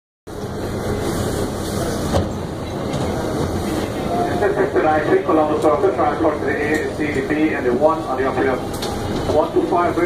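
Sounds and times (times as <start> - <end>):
subway car rumble and hum: 0.3 - 10.0.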